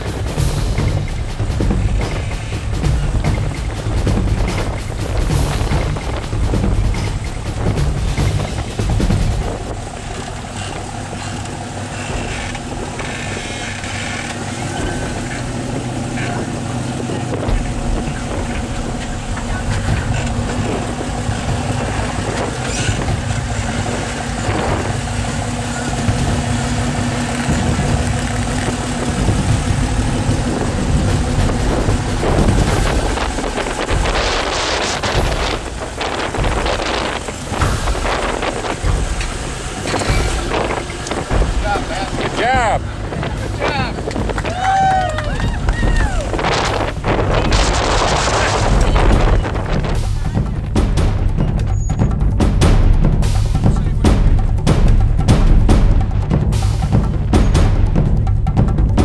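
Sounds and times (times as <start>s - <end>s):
engine running at low revs: 0.0s - 59.0s.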